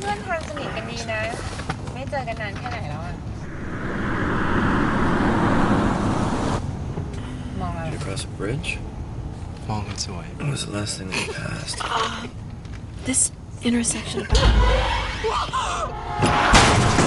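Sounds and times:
car road noise rushing: 3.4s - 7.7s.

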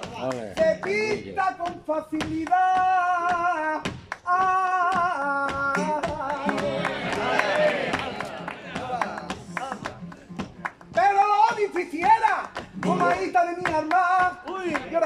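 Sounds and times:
man singing flamenco: 0.0s - 6.8s, 10.9s - 15.0s
flamenco guitar: 0.0s - 15.0s
rhythmic handclaps: 0.0s - 15.0s.

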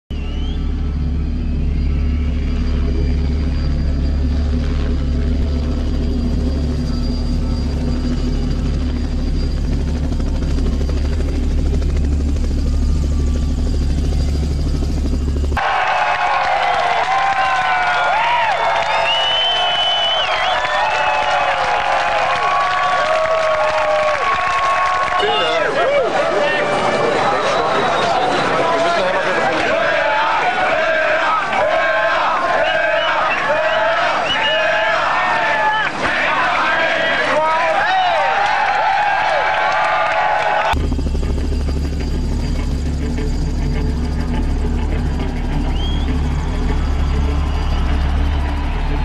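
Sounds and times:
helicopter rumble: 0.2s - 49.0s
crowd shouting and cheering: 15.0s - 40.8s, 43.9s - 49.0s.

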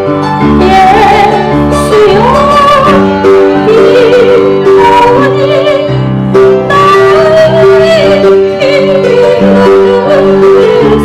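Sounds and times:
keyboard accompaniment: 0.0s - 11.0s
woman singing into a microphone: 0.4s - 11.0s.

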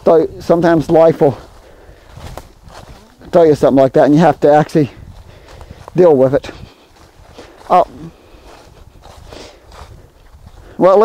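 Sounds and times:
footsteps in dry leaves: 0.5s - 11.0s.

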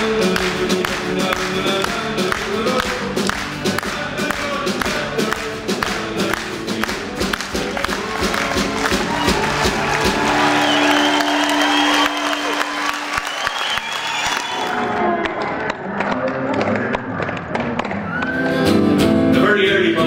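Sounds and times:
folk band playing: 0.0s - 13.0s
audience applause and cheering: 0.0s - 18.9s.

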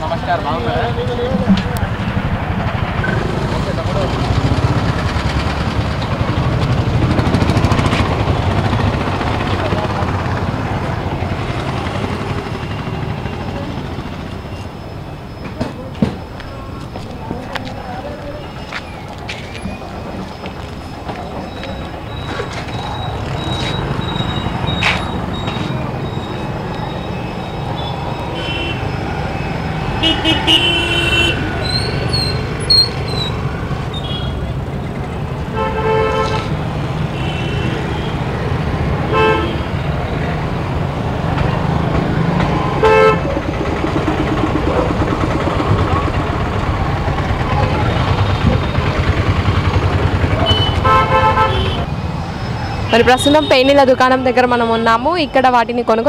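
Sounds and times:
traffic engines rumbling: 0.0s - 56.0s
vehicle horn toots: 27.8s - 29.0s, 30.0s - 31.9s, 35.5s - 38.2s, 39.0s - 39.9s, 42.8s - 43.3s, 50.4s - 51.9s.

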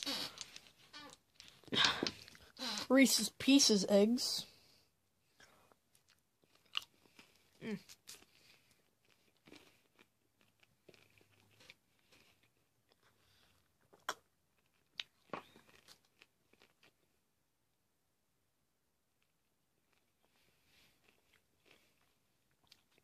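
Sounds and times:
chewing candy with crunches: 0.0s - 2.9s, 5.3s - 17.2s, 19.2s - 23.0s.

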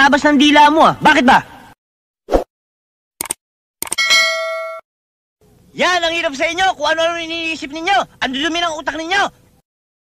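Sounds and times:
mouse clicks: 3.2s - 4.0s
bell ding: 4.0s - 4.8s.

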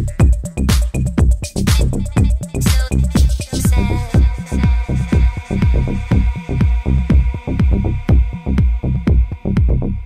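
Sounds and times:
deep house music: 0.0s - 10.0s
hi-hats ticking: 0.0s - 10.0s
kick drum with falling bass: 0.0s - 10.0s.

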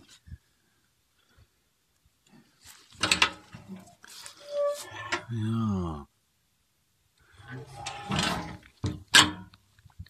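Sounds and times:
man's low voice: 5.1s - 6.1s.

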